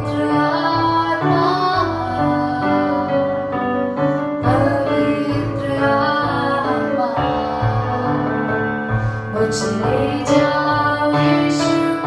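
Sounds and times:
electronic keyboard chords: 0.0 - 12.0
woman singing into microphone: 0.0 - 12.0.

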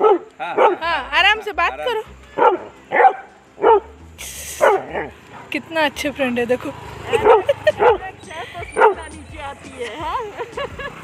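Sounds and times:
dog yipping and barking: 2.4 - 3.9, 4.6 - 5.2, 7.1 - 9.1.

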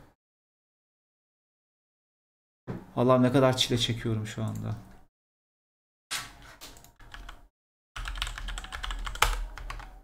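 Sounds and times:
typing on computer keyboard: 6.8 - 7.4, 8.0 - 10.0.

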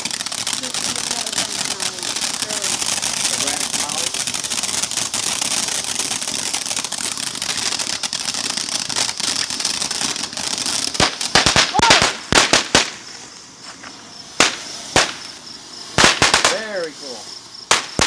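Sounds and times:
firecracker bangs: 0.0 - 13.2, 14.4 - 17.0, 17.7 - 18.0
firework hissing: 0.0 - 18.0.

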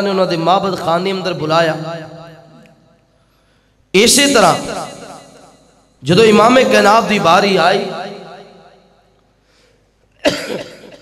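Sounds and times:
man coughing: 10.1 - 11.0.

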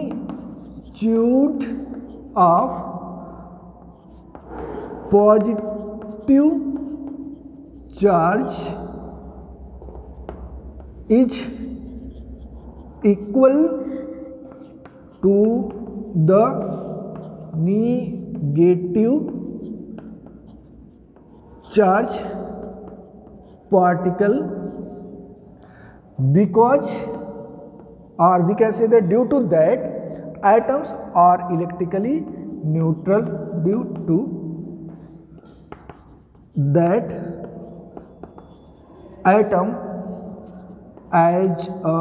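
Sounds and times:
chalk tapping on board: 0.0 - 9.1, 9.7 - 25.1, 26.8 - 28.5, 31.9 - 42.0
chalk scratching on blackboard: 0.0 - 25.4, 31.6 - 42.0.

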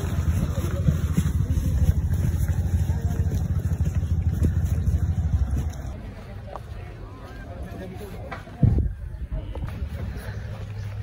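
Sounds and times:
wind buffeting microphone: 0.0 - 6.0, 8.5 - 11.0.

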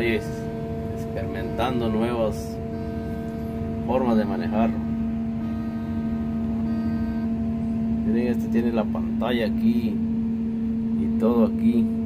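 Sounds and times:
machine humming from inside cab: 0.0 - 12.0.

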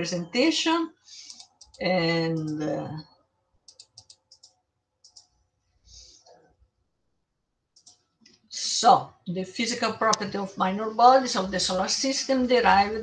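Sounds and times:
light computer clicks: 1.3 - 2.7, 3.7 - 5.3.

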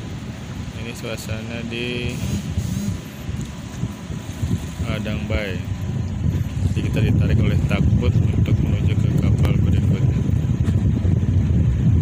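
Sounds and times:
boat engine rumbling: 0.0 - 12.0
wind buffeting microphone: 0.0 - 12.0.

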